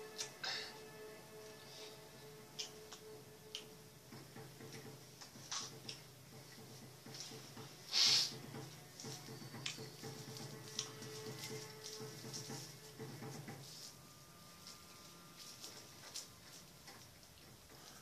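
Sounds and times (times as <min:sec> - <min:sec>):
faint soft background music: 0:00.0 - 0:18.0
rolling paper rustling: 0:05.1 - 0:18.0.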